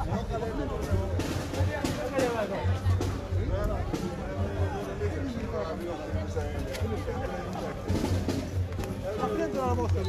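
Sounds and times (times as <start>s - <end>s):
crowd chatter: 0.0s - 10.0s
drum beats: 0.0s - 10.0s.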